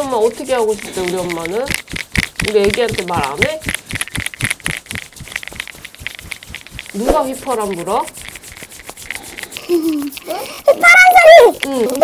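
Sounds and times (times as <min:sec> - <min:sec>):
rubbing and crackling clicks: 0:00.0 - 0:12.0.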